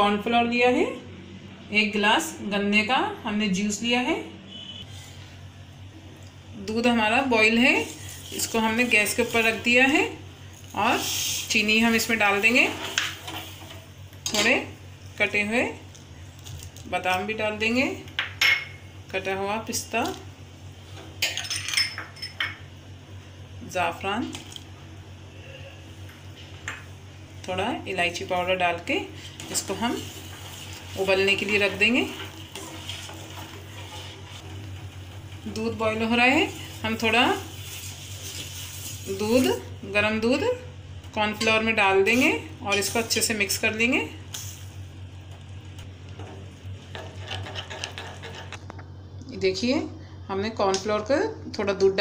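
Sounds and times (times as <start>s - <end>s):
steady low hum: 0.0s - 52.0s
spoon stirring in glass bowl: 46.9s - 48.6s.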